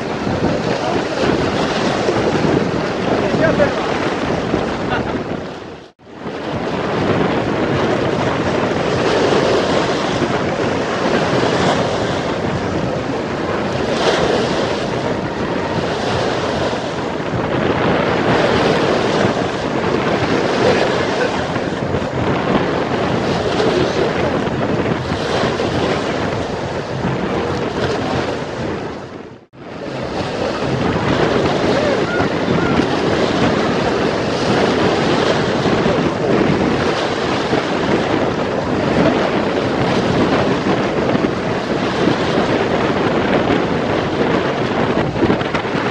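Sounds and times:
waves breaking against concrete: 0.0 - 45.9
wind buffeting microphone: 0.0 - 45.9.

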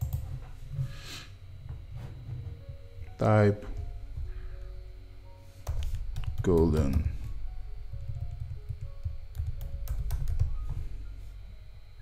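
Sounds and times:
computer keyboard typing: 0.0 - 0.3, 5.6 - 10.8
soft background music: 0.0 - 12.0.

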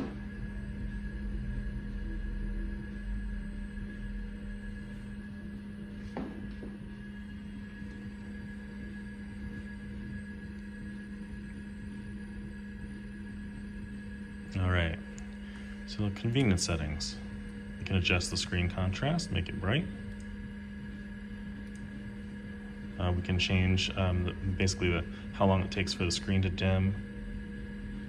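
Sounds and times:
computer electrical hum: 0.0 - 28.0.

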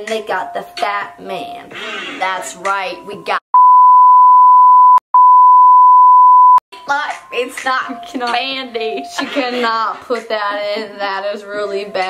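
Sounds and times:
high-pitched censor bleep: 3.6 - 6.6.

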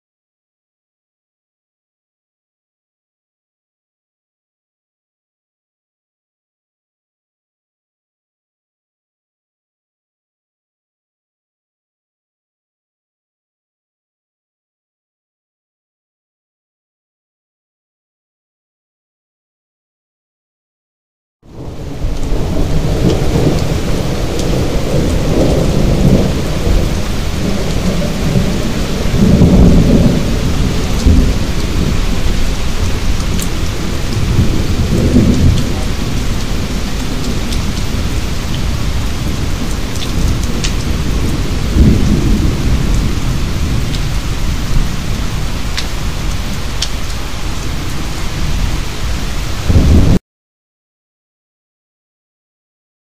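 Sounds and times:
floodwater roaring: 21.5 - 50.2.

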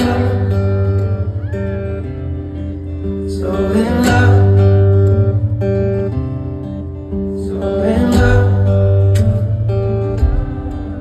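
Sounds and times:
live acoustic guitar music: 0.0 - 11.0.

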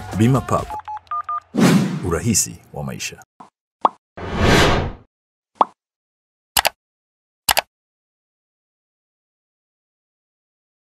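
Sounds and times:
whoosh: 4.2 - 5.0.

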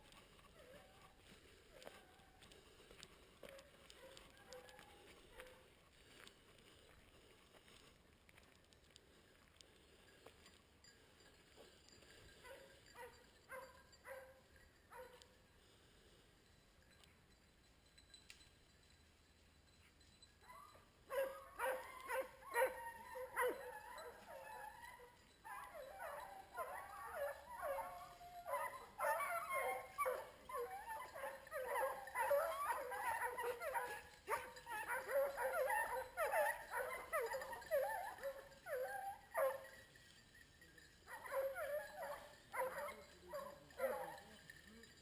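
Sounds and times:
hounds baying: 0.0 - 6.3, 20.4 - 40.1, 40.9 - 45.0.

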